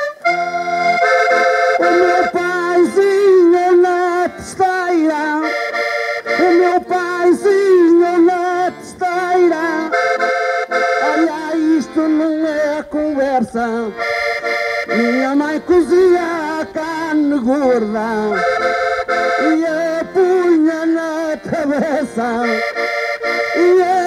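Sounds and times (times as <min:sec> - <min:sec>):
accordion playing folk tune: 0:00.0 - 0:24.0.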